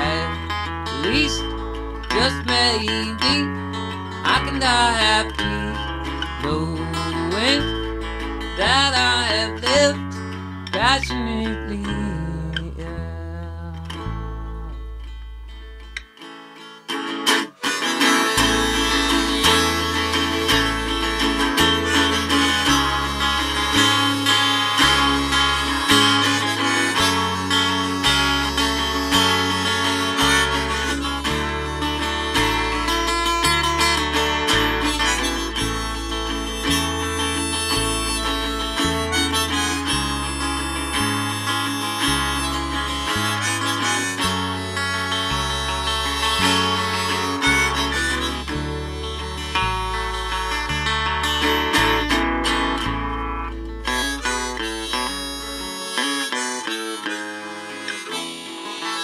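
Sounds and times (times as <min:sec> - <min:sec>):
bass notes: 0:00.0 - 0:16.2, 0:16.8 - 0:59.0
harmonica playing: 0:00.0 - 0:59.0
strummed guitar: 0:00.0 - 0:59.0.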